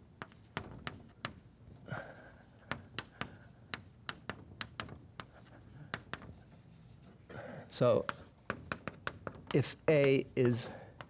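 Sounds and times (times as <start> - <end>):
chalk tapping on blackboard: 0.2 - 7.2, 8.0 - 11.0
faint chalk scratching: 0.2 - 10.8.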